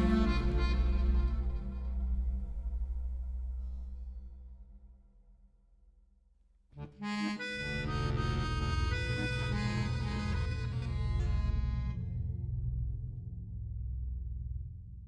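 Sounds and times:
accordion chord: 0.0s - 2.4s, 6.8s - 12.1s.

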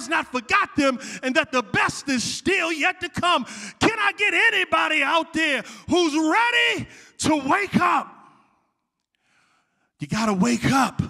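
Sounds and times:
man shouting: 0.0s - 8.3s.

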